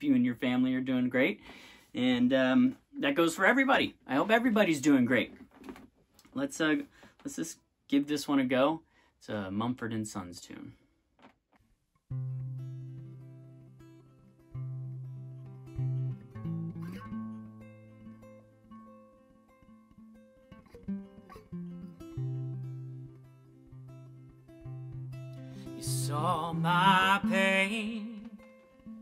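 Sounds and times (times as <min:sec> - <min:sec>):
acoustic guitar playing: 0:12.1 - 0:29.0.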